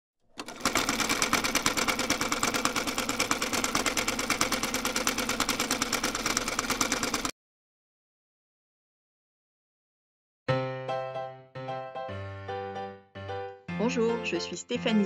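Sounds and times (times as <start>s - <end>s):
fast mechanical clicking: 0.4s - 7.3s.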